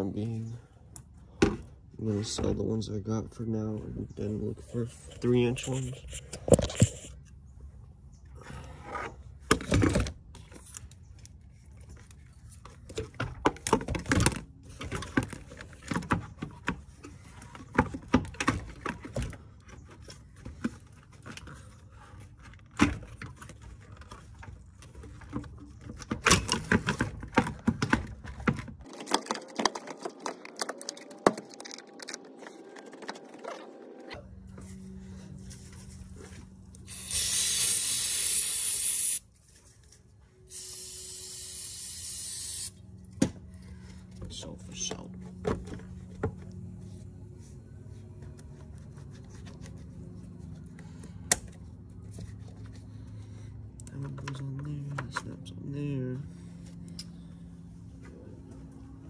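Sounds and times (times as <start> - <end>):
aerosol spray: 36.9 - 39.2, 40.5 - 42.7.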